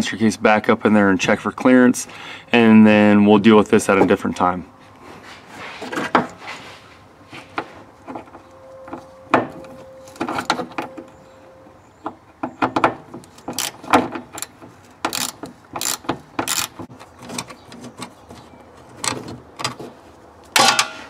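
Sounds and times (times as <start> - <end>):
ratchet wrench clicking: 13.3 - 16.8
sharp metal knocks: 20.6 - 21.0.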